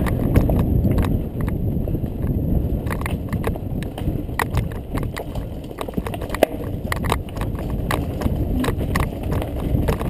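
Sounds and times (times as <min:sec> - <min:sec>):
bike clicking and knocking over stones: 0:00.0 - 0:10.0
wind buffeting microphone: 0:00.0 - 0:10.0.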